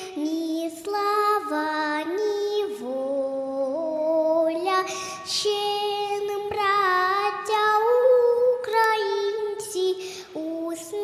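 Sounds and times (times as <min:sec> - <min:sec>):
girl singing into microphone: 0:00.0 - 0:11.0.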